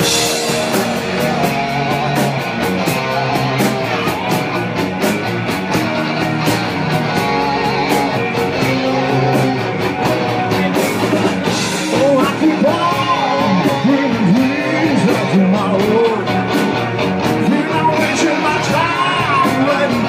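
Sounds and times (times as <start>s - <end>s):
distorted electric guitar lead: 0.0s - 20.0s
rock band playing: 0.0s - 20.0s.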